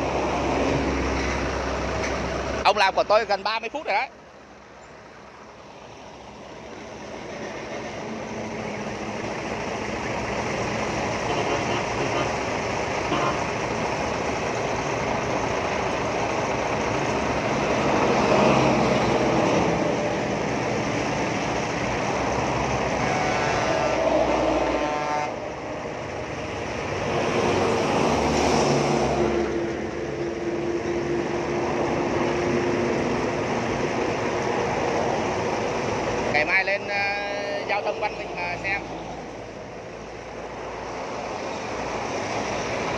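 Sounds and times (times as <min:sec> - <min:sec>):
road traffic passing: 0:00.0 - 0:42.9.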